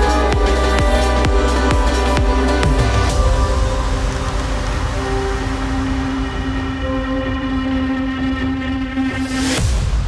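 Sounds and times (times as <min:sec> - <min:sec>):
held synth chord: 0:00.0 - 0:09.7
low rumbling drone: 0:00.0 - 0:10.0.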